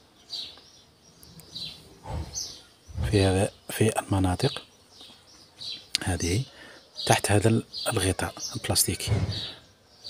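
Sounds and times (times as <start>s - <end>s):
faint bird chirps: 0.0s - 10.0s.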